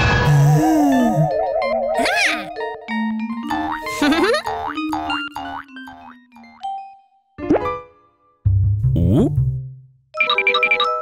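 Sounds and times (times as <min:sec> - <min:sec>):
descending bass line: 0:08.5 - 0:09.8.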